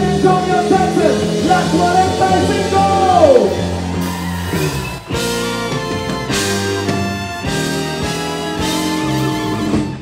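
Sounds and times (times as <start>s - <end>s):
live band playing loudly: 0.0s - 10.0s.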